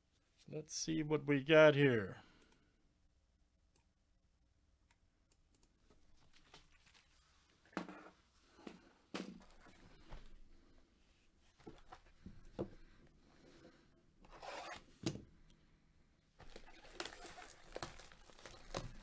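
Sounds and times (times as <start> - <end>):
plastic wrap crinkling: 16.4 - 19.0
plastic wrap rustling: 16.4 - 19.0.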